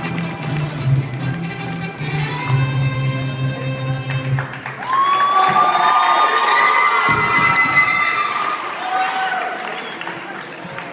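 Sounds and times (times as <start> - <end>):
crowd cheering and screaming: 4.6 - 10.4.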